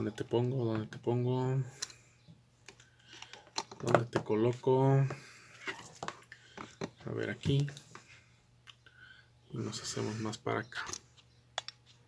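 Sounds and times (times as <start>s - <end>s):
man talking: 0.0s - 1.8s, 3.8s - 5.2s, 7.0s - 7.9s, 9.5s - 11.0s.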